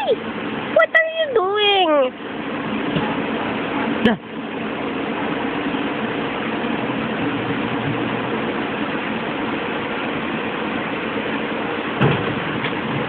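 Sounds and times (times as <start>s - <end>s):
steady machine drone: 0.0s - 13.0s.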